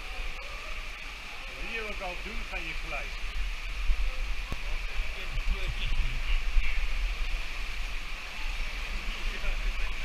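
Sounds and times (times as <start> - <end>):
water rushing down rocks: 0.0 - 10.0.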